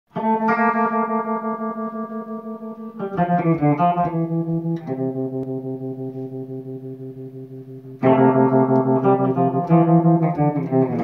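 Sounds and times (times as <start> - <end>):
electric guitar chord ringing: 0.1 - 11.0.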